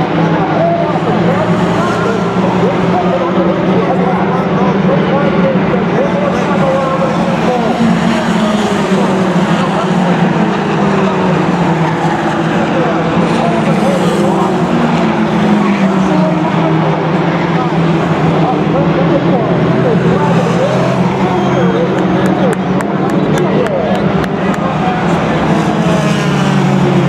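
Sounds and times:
race car engines: 0.0 - 27.0.

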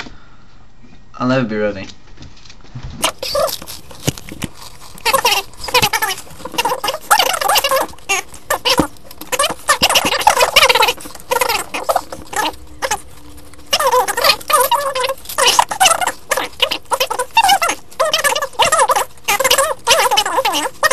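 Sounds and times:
chips crunching: 3.0 - 20.9.

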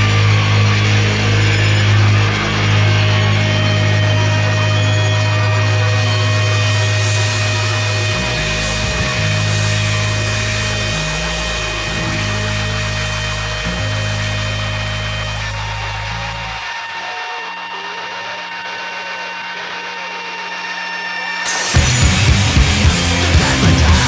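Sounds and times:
distorted noise drone: 0.0 - 24.0
high whining tones: 0.0 - 24.0.

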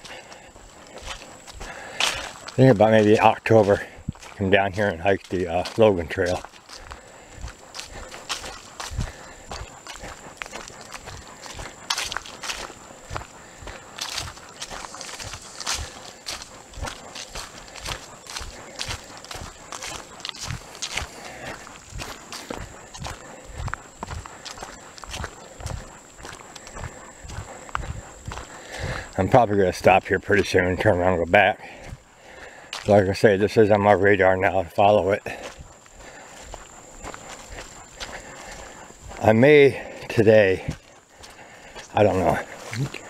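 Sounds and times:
leaves rustling: 0.0 - 29.1
footsteps on leafy dirt trail: 0.0 - 43.0.

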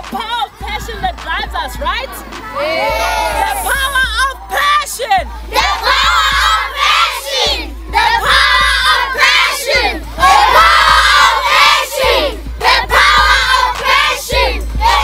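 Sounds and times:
children shouting and cheering: 0.0 - 15.0.

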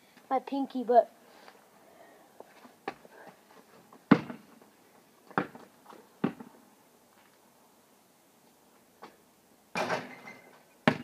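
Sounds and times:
basketball bouncing on pavement: 4.1 - 4.6, 5.3 - 6.6
basketball clanging off hoop: 9.8 - 11.0.

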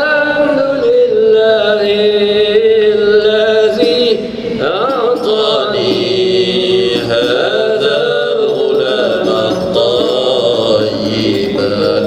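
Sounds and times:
man chanting devotional poem: 0.0 - 12.0.

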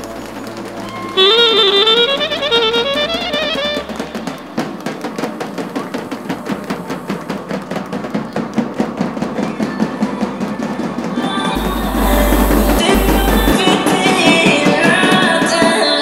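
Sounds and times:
drums beaten with sticks: 10.4 - 15.9
loud burst of music: 11.6 - 14.6.

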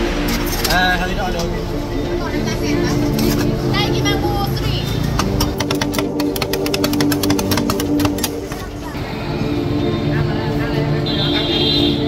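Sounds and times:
crowd chatter: 0.0 - 5.6, 8.0 - 12.0
background music: 0.0 - 12.0
metal spatulas scraping on plate: 3.1 - 3.6
fast sharp spatula taps: 5.2 - 8.6.

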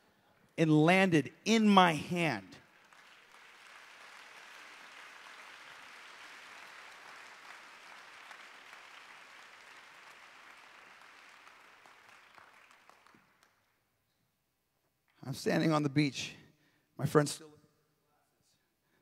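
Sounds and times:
congregation applauding: 1.8 - 13.9.

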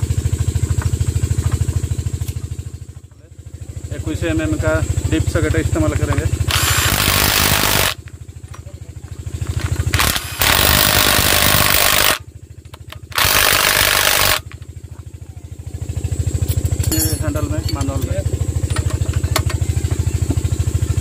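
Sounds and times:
low engine beat: 0.0 - 6.6, 8.0 - 10.0, 14.4 - 21.0
cordless impact wrench: 6.5 - 8.0, 9.9 - 12.2, 12.8 - 14.5.

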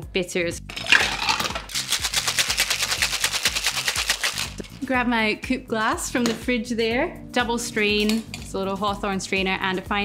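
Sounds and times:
ice rattling in metal shaker: 0.7 - 4.9
shaker tins knocking together: 0.7 - 4.9.

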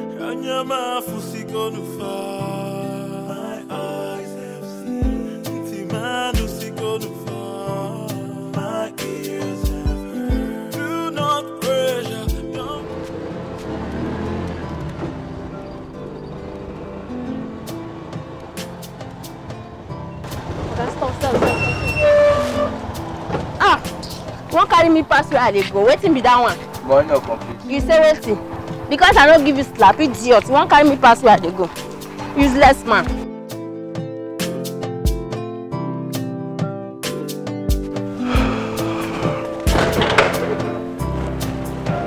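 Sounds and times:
auto-rickshaw horn honking: 20.2 - 25.6
person's voice: 32.4 - 33.2.

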